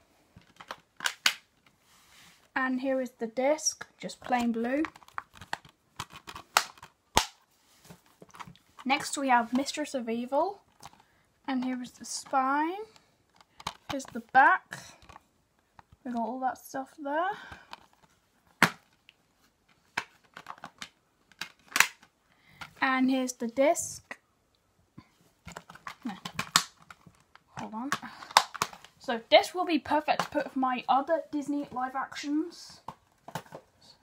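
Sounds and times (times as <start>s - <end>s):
plastic case rustling: 0.4s - 1.8s, 4.0s - 9.8s, 10.6s - 14.4s, 15.0s - 16.1s, 17.6s - 22.8s, 25.4s - 29.4s, 32.8s - 33.8s
plastic case clicks: 4.8s - 7.4s, 20.0s - 22.1s, 25.5s - 27.3s, 27.9s - 28.9s.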